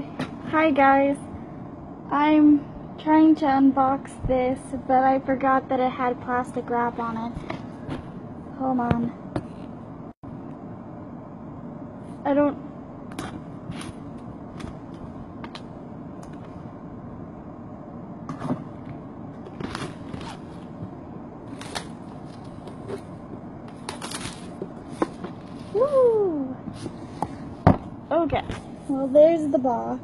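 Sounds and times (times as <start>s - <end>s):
shrink-wrap crinkling and tearing: 23.7s - 24.6s.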